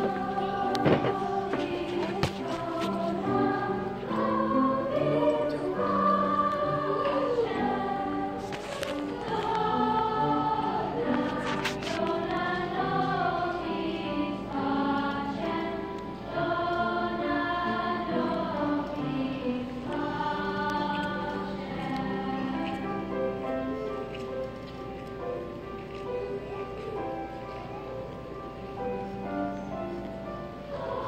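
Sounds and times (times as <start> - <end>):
children's choir singing: 0.0 - 31.0.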